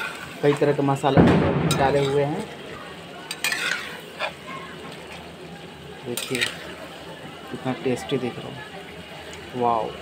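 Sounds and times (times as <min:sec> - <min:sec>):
spatula scraping a pan: 0:00.0 - 0:00.8, 0:03.3 - 0:05.3, 0:06.1 - 0:06.8
curry sizzling in a pan: 0:00.0 - 0:10.0.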